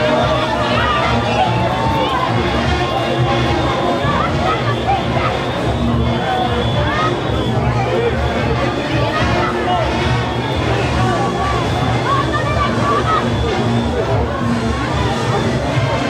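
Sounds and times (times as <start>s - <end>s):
crowd voices and shouts: 0.0s - 16.0s
horns playing: 0.0s - 16.0s
street parade music: 0.0s - 16.0s.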